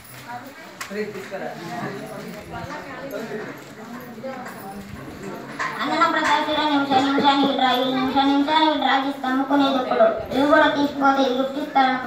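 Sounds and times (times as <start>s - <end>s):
quiet indistinct talking: 0.0s - 12.0s.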